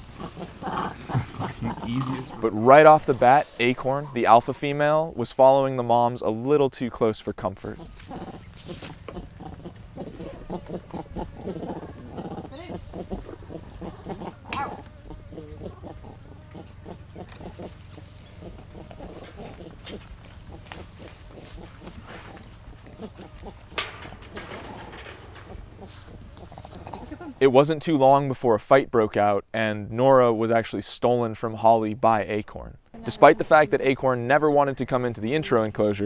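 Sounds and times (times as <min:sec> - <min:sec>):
monkeys calling and chattering: 0:00.0 - 0:04.3, 0:07.6 - 0:27.4, 0:33.0 - 0:34.1
steady low hum: 0:00.0 - 0:27.5.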